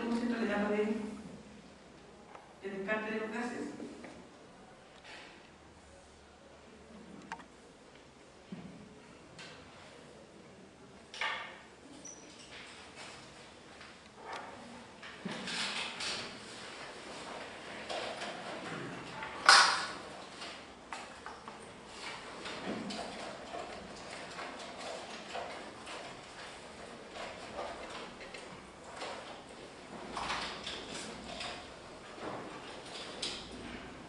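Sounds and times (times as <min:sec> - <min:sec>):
footsteps in a room: 0:16.2 - 0:34.0.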